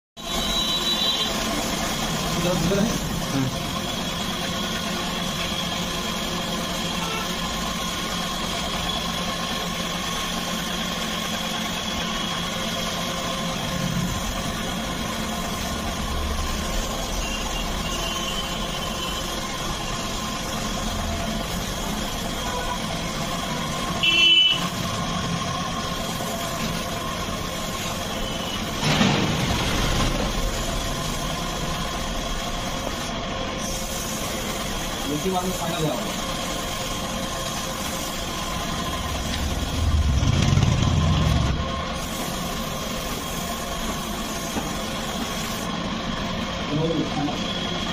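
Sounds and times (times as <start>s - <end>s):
spray gun air hiss: 0.2s - 47.9s.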